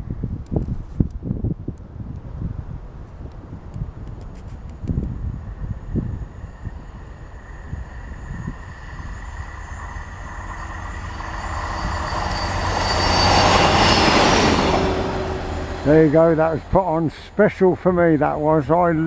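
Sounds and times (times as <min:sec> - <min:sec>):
rail machine passing at speed: 0:04.5 - 0:19.0.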